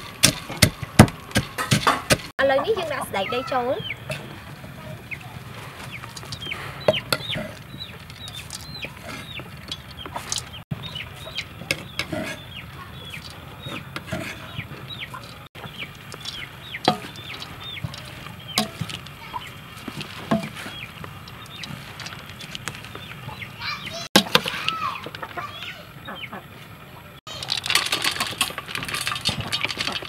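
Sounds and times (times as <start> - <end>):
chickens peeping: 1.8 - 27.4.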